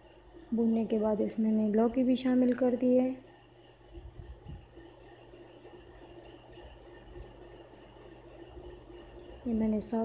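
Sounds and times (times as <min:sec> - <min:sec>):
steady faint hum: 0:00.0 - 0:10.0.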